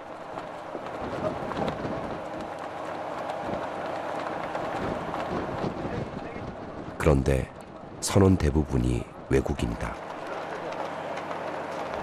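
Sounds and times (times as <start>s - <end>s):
boat machinery running: 0.0s - 8.2s
wind on microphone: 0.8s - 2.5s, 4.8s - 7.1s
faint crew voices: 5.6s - 12.0s.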